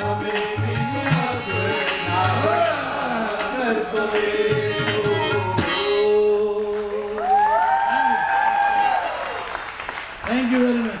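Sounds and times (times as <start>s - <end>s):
man's voice: 0.0s - 7.3s, 10.2s - 11.0s
qawwali song: 0.0s - 9.0s
audience applause: 6.7s - 11.0s.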